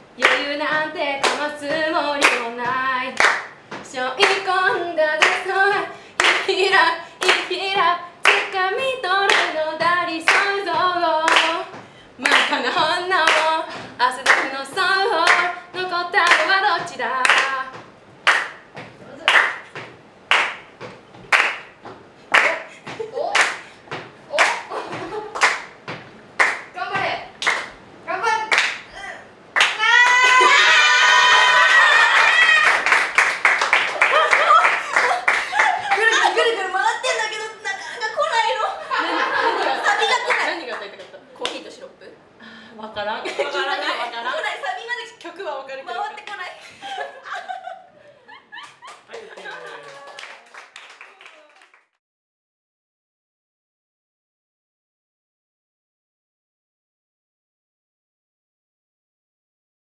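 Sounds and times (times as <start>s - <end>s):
women singing a cappella: 0.2s - 3.2s, 3.8s - 17.8s
steady hand-clapping beat: 0.2s - 8.6s, 9.3s - 27.8s, 28.5s - 28.9s, 29.6s - 30.5s, 32.0s - 36.4s, 48.6s - 52.0s
women shrieking and laughing: 29.8s - 32.7s.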